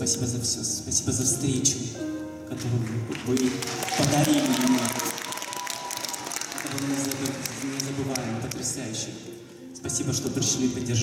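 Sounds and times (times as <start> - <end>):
soft held musical tone: 0.0 - 4.2
man talking: 0.0 - 5.2, 6.5 - 11.0
audience applause: 2.6 - 8.8.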